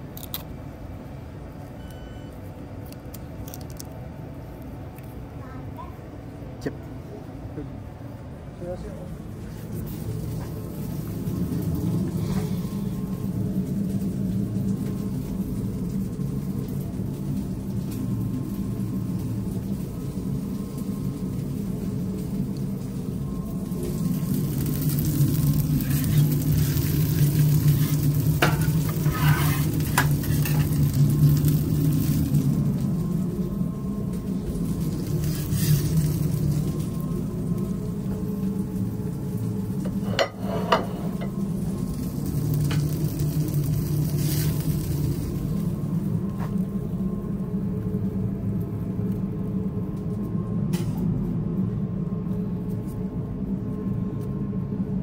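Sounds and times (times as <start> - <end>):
low machine hum: 0.0 - 55.0
food sizzling on grill: 9.4 - 46.6.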